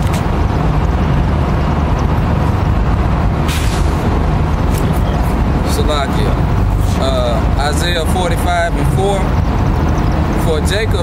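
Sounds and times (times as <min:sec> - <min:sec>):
street traffic rumble: 0:00.0 - 0:11.0
air brakes hiss: 0:03.5 - 0:04.0.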